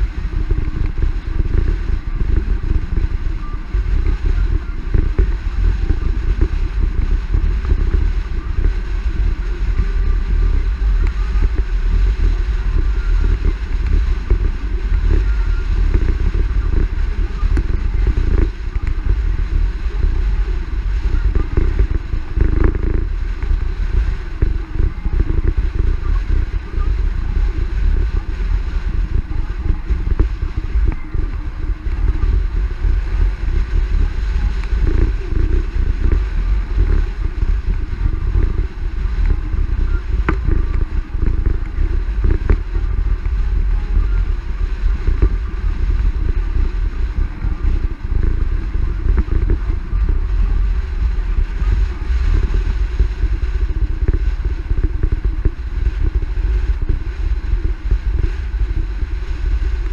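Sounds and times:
car road noise: 0:00.0 - 0:55.6
wind rush: 0:00.0 - 0:59.9.

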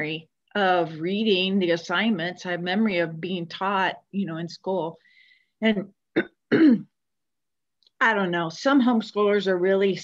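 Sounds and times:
woman clearing her throat: 0:06.1 - 0:06.9.

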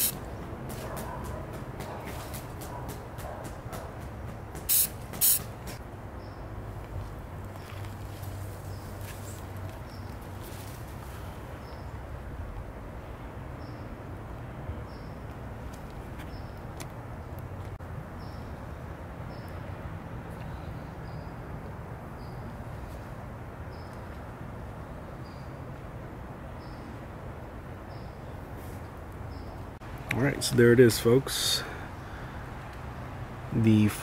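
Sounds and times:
low outdoor background noise: 0:00.0 - 0:34.0.

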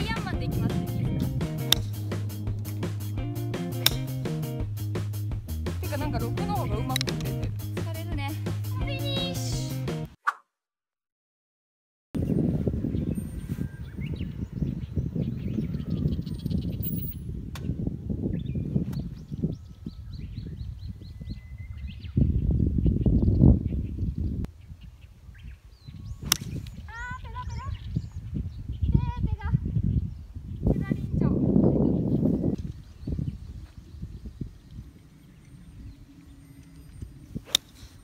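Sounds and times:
wind rumble on microphone: 0:00.0 - 0:03.5, 0:12.2 - 0:38.0
birds chirping: 0:00.0 - 0:10.1, 0:12.2 - 0:38.0
golf club striking ball: 0:00.1 - 0:04.5, 0:06.9 - 0:07.6, 0:36.7 - 0:37.9.

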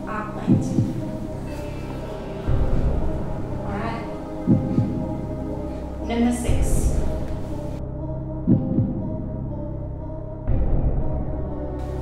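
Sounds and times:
tense background music: 0:00.0 - 0:12.0.

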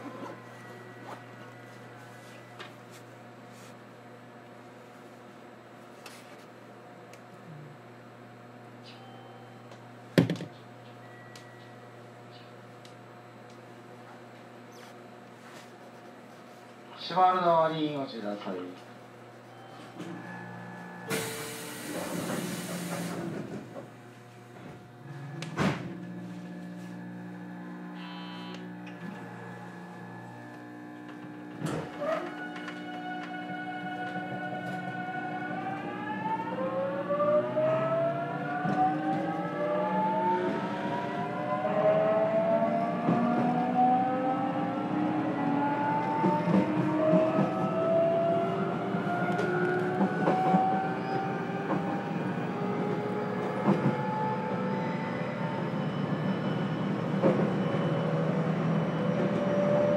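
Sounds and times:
electric train motor hum: 0:18.4 - 0:59.9
rising motor whine: 0:24.6 - 0:56.6.

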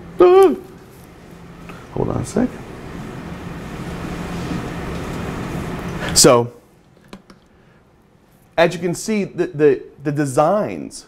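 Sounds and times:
low hum: 0:00.0 - 0:06.3.

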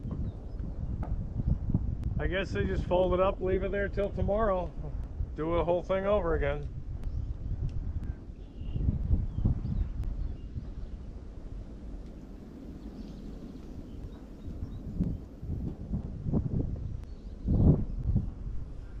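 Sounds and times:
wind rumbling on microphone: 0:00.0 - 0:19.0.

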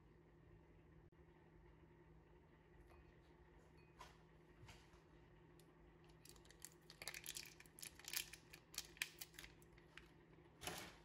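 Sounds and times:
plastic pouch crinkling: 0:06.2 - 0:10.1.

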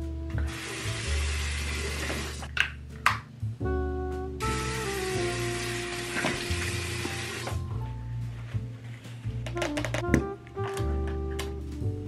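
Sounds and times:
water running from tap into sink: 0:00.4 - 0:02.5, 0:04.5 - 0:07.6.

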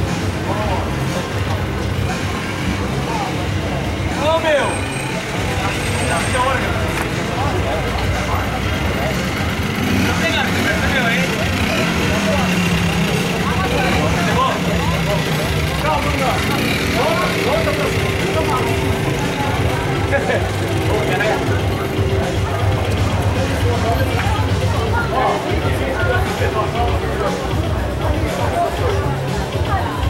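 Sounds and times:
people chattering: 0:00.0 - 0:30.0.

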